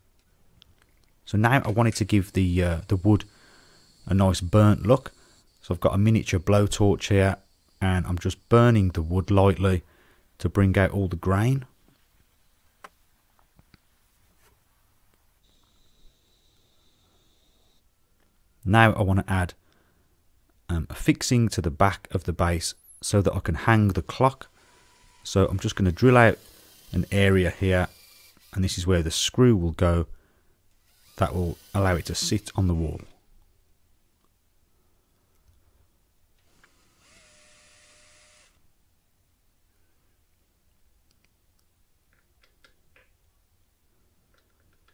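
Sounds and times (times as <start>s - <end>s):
power drill whining: 1.6s - 9.2s, 15.4s - 17.8s, 24.0s - 28.8s, 30.8s - 33.2s, 36.4s - 38.6s.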